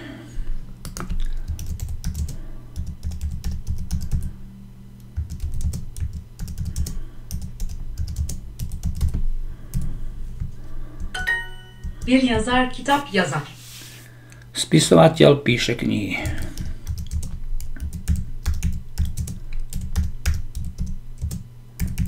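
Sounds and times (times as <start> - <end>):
typing on computer keyboard: 0.8 - 4.3, 5.2 - 9.9, 16.3 - 22.0
short electronic chime: 11.2 - 11.9.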